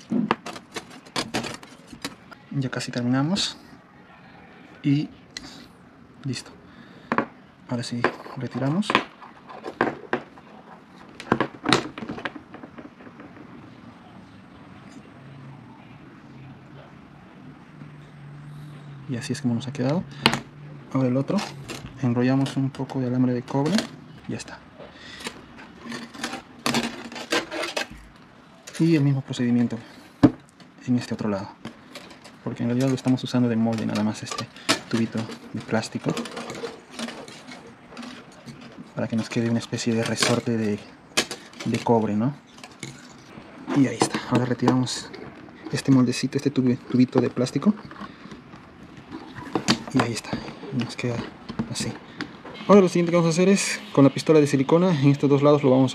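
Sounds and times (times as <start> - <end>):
faint low hum: 0.0 - 55.9
clicks and taps handling wire: 8.0 - 13.6, 31.4 - 53.4.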